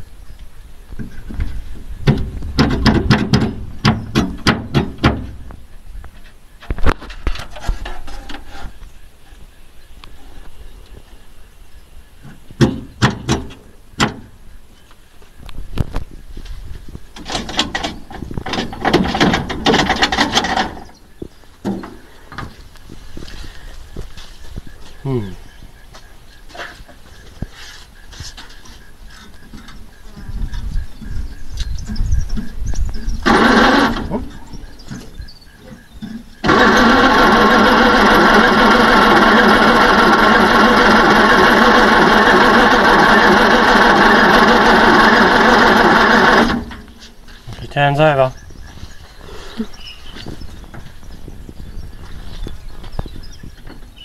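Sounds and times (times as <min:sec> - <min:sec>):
engine cranking on starter motor: 0:33.2 - 0:34.4, 0:35.8 - 0:47.0.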